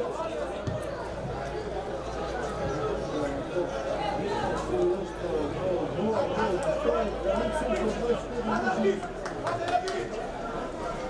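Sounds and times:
men's voices chattering: 0.0s - 11.0s.

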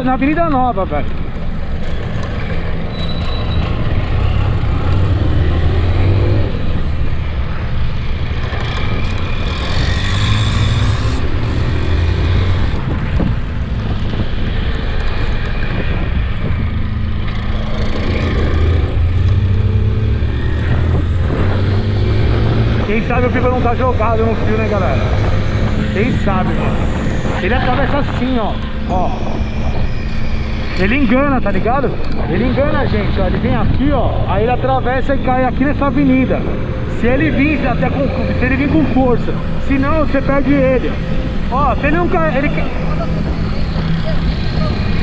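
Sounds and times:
wind and road noise: 0.0s - 45.0s
motorcycle engine revving: 1.2s - 45.0s.

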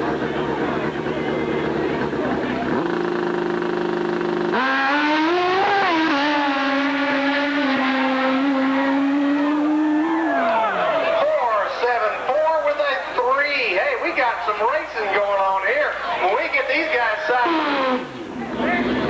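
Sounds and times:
motorcycle engine revving: 0.0s - 10.8s, 17.4s - 19.0s.

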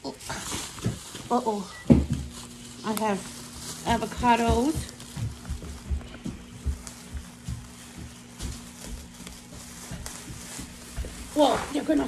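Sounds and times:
plastic bags rustling: 0.0s - 12.0s
steady low hum: 0.0s - 12.0s
soft bumps: 3.1s - 12.0s.

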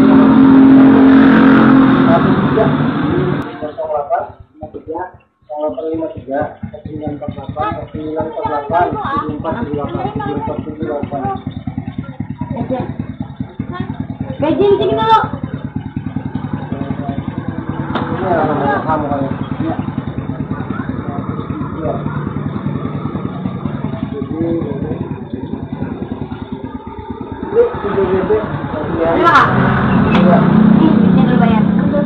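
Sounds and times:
people talking: 1.8s - 15.4s, 16.5s - 26.8s, 27.4s - 32.0s
motorcycle engine idling: 2.0s - 32.0s.

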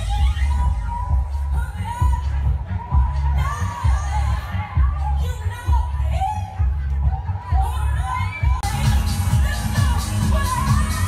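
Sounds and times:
crowd shouting and cheering: 0.0s - 11.0s
dance music with heavy bass: 0.0s - 11.0s.

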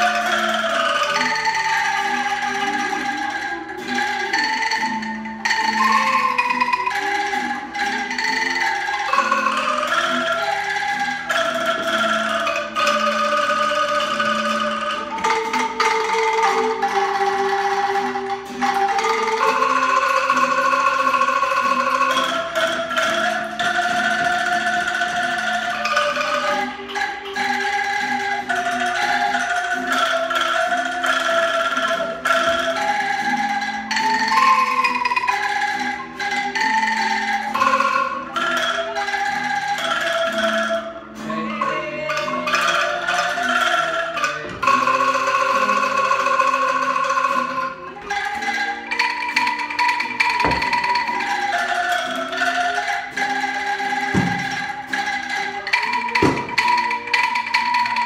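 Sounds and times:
bamboo angklung ensemble melody: 0.0s - 58.0s.

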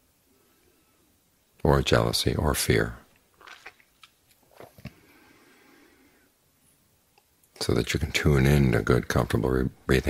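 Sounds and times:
soft faint noise: 0.0s - 10.0s
man speaking: 1.6s - 3.1s, 7.6s - 10.0s.

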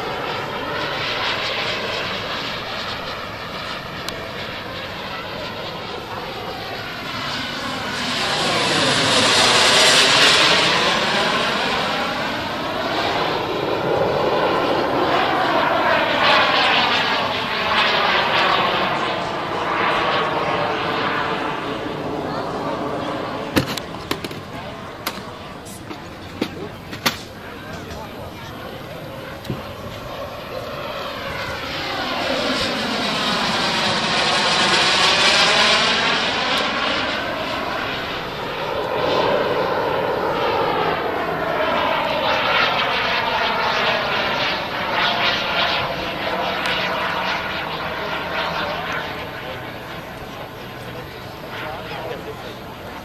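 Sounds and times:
model jet engine roar flyby: 0.0s - 53.0s.

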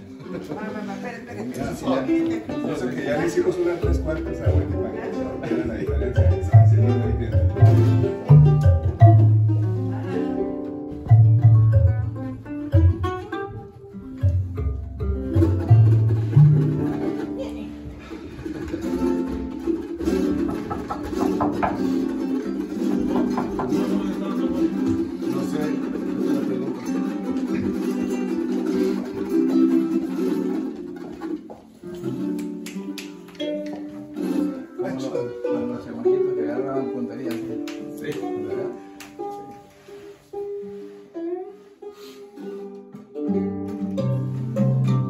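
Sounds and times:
acoustic guitars strumming: 0.0s - 45.0s
plucked bass notes: 2.4s - 31.1s, 43.0s - 45.0s.

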